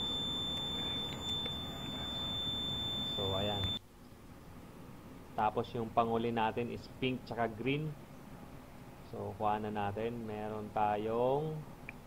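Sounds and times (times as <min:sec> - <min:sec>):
high-pitched meter beep tone: 0:00.0 - 0:03.8.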